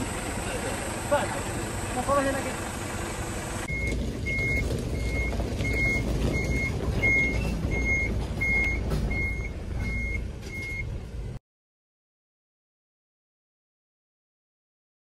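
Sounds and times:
truck engine rumble: 0.0 - 11.4
reversing alarm beeping: 3.6 - 10.9.

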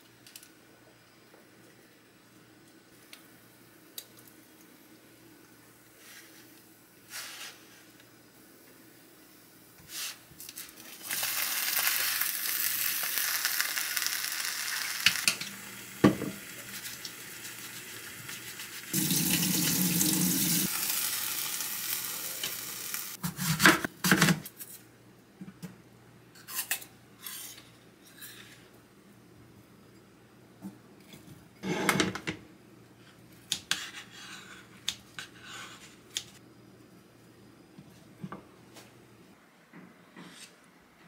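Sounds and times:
food sizzling in a frying pan: 10.8 - 23.2
tap water running into sink: 19.0 - 20.7.

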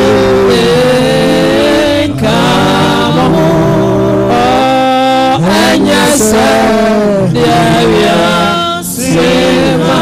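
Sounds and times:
gospel band sustained chord: 0.0 - 10.0.

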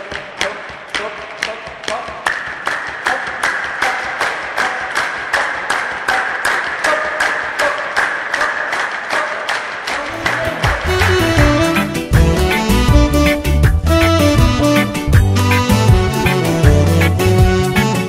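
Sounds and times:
group clapping in rhythm: 0.0 - 18.0
voices singing or chanting: 0.4 - 11.3.

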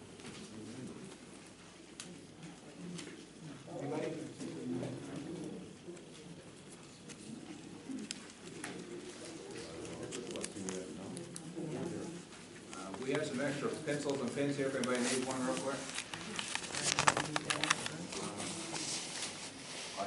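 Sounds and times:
murmur of voices: 0.0 - 20.0
pens ticking on paper: 5.0 - 11.6, 12.6 - 18.2.

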